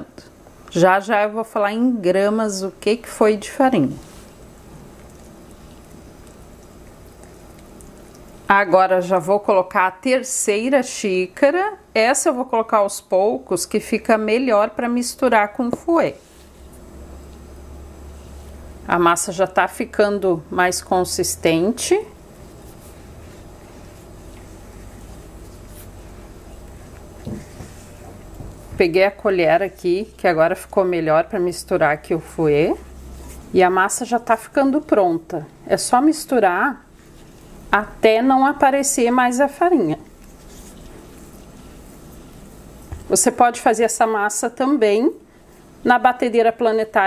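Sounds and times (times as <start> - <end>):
whisk stirring batter: 21.7 - 34.5.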